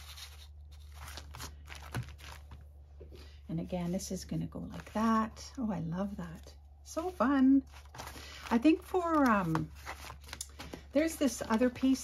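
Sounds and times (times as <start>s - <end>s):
cardboard rustling and scraping: 0.0s - 2.6s, 6.2s - 12.0s.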